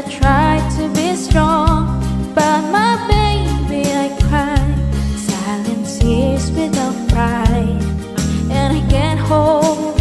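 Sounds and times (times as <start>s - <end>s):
instrumental backing track: 0.0s - 10.0s
woman singing with vibrato: 0.0s - 10.0s.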